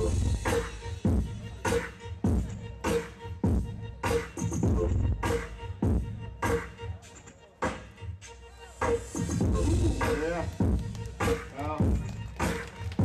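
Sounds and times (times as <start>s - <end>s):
sung or rapped vocal: 0.0s - 2.5s, 8.6s - 12.1s.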